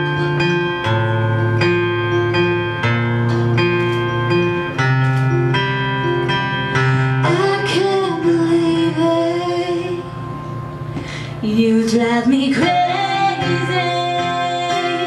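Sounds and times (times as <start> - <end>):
acoustic guitar strumming chords: 0.0 - 15.0
person singing: 7.2 - 10.2, 11.4 - 15.0.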